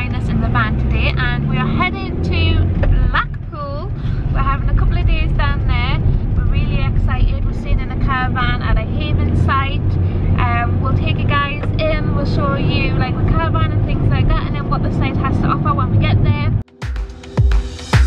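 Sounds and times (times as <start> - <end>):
woman talking: 0.0 - 16.6
road and engine rumble: 0.0 - 16.7.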